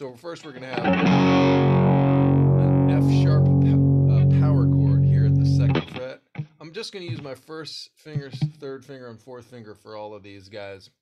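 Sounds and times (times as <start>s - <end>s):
man talking: 0.0s - 1.0s, 2.4s - 11.0s
distorted electric guitar chord: 0.8s - 5.9s.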